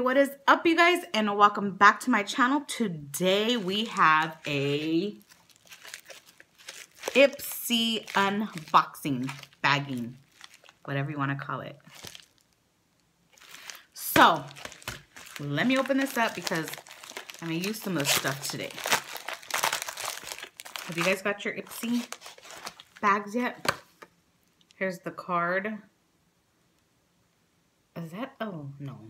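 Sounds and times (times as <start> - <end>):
plastic mailer crinkling: 3.2 - 10.9, 11.8 - 12.6, 13.3 - 23.8.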